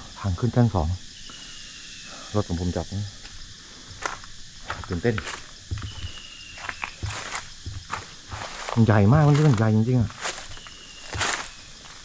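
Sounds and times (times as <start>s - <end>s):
footsteps crunching on dry leaves: 3.8s - 12.0s.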